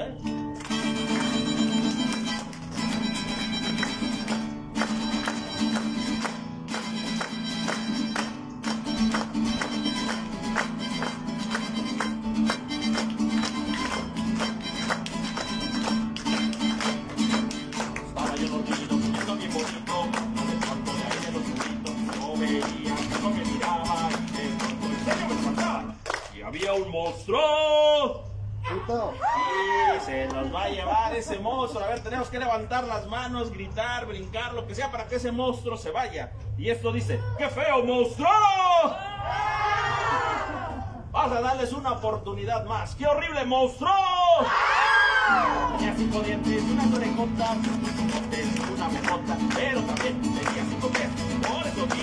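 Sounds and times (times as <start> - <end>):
acoustic guitar strumming: 0.0 - 26.0, 45.4 - 52.0.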